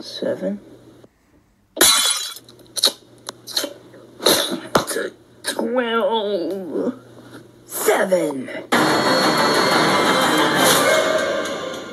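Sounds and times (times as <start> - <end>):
glass shattering: 1.8 - 2.4.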